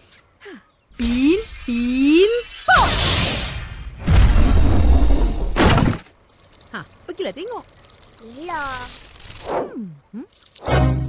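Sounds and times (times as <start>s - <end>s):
fast rattling flutter: 6.1s - 9.7s, 10.3s - 10.8s.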